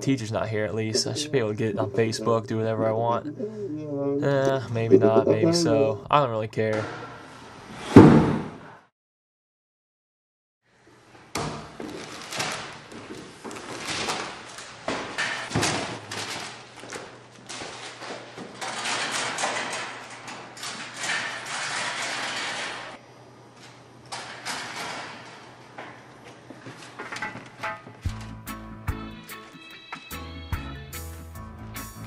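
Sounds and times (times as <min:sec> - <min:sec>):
steady low hum: 0:00.0 - 0:06.6.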